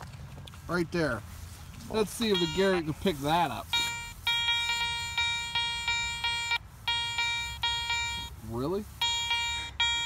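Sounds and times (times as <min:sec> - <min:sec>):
metal detector beeps: 0:02.2 - 0:03.1, 0:03.7 - 0:08.4, 0:09.0 - 0:10.0.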